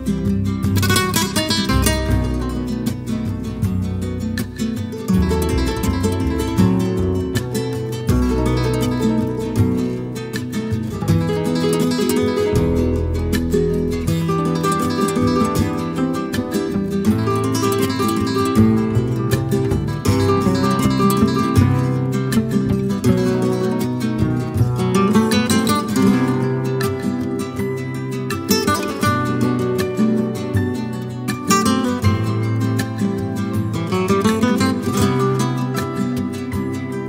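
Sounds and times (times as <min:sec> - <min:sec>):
flamenco acoustic guitar: 0:00.0 - 0:37.0.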